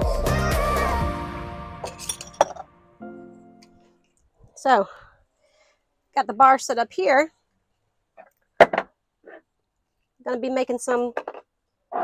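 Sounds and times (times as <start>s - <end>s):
music: 0.0s - 4.0s
glass bottles clinking on counter: 1.9s - 2.7s.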